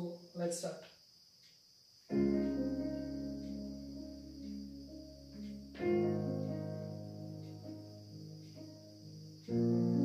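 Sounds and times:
instrumental backing track: 0:02.1 - 0:10.0.

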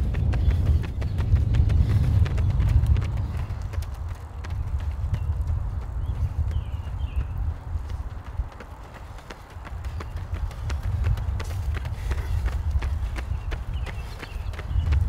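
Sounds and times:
steady low rumble: 0:00.0 - 0:13.9
running footsteps on asphalt: 0:00.0 - 0:15.0.

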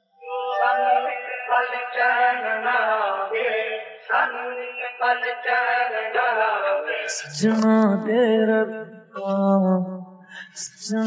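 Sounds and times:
man singing solo: 0:00.3 - 0:01.9.

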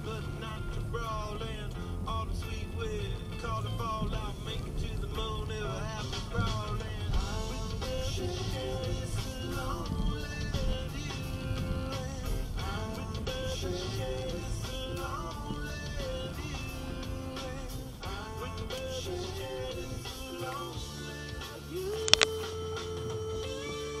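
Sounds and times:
steady held tone: 0:00.0 - 0:21.1
rock song with guitar on car radio: 0:00.0 - 0:24.0
sharp click: 0:22.0 - 0:22.4.

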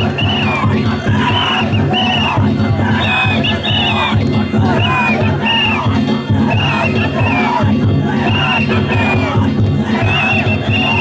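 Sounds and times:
crowd of festival-goers: 0:00.0 - 0:11.0
drums beating fast rhythm: 0:00.0 - 0:11.0.

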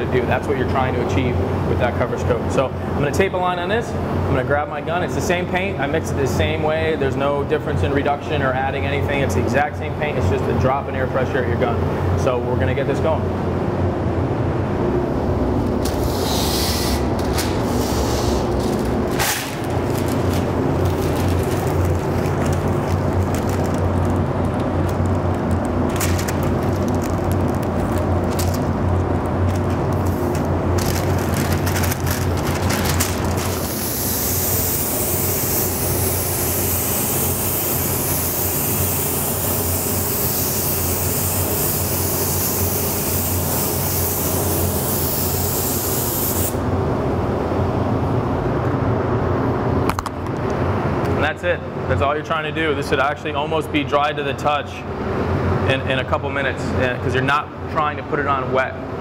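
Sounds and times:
air system humming: 0:00.0 - 0:59.0
spray gun hissing: 0:16.0 - 0:17.1, 0:33.6 - 0:46.6.

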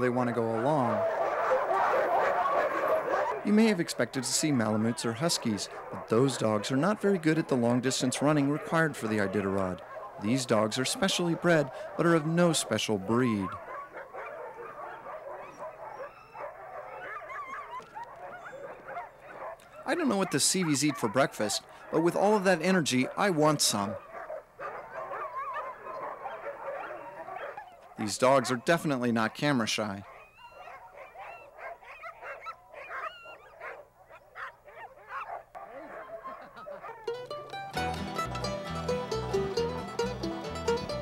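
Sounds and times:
sled dogs barking and yelping: 0:00.0 - 0:41.0.

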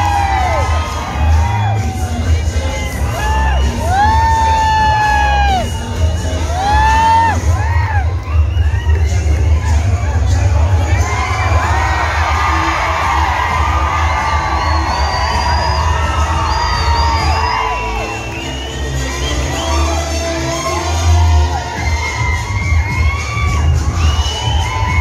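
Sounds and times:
crowd cheering and shouting: 0:00.0 - 0:25.0
loud music with heavy bass: 0:00.0 - 0:25.0.

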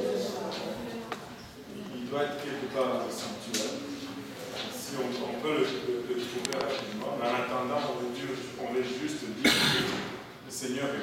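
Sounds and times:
person coughing: 0:09.4 - 0:10.1.

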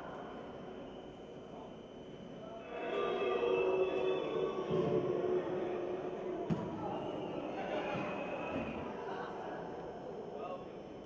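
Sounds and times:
echoing indoor match background: 0:00.0 - 0:11.0.

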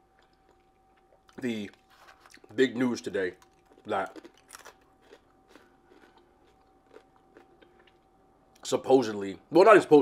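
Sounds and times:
person chewing food: 0:00.0 - 0:02.6, 0:03.3 - 0:08.6.

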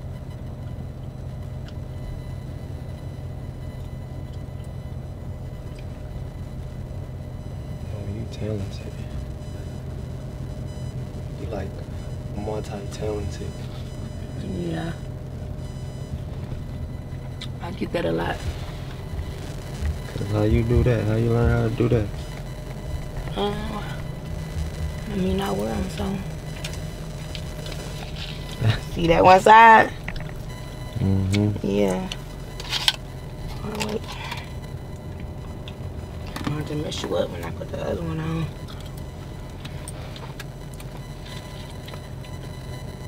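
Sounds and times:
car engine idling: 0:00.0 - 0:43.0
person humming: 0:31.0 - 0:31.6.

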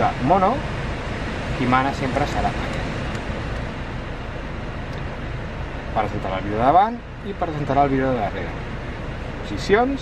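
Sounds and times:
blower fan rushing air: 0:00.0 - 0:10.0.

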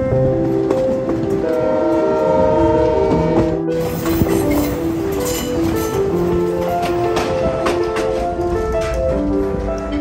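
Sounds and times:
moving train rumble: 0:00.0 - 0:10.0
steam locomotive whistle: 0:01.4 - 0:03.6.

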